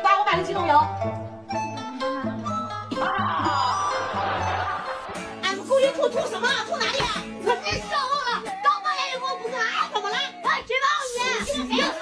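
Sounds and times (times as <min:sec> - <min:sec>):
boy complaining: 0:05.4 - 0:12.0.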